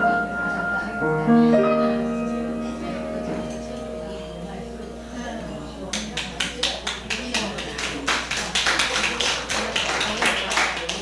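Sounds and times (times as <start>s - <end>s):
small audience applauding: 5.9s - 11.0s.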